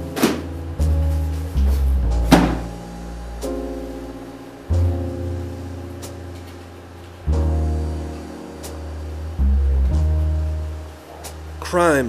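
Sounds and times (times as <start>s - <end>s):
slow film-score music: 0.0s - 12.0s.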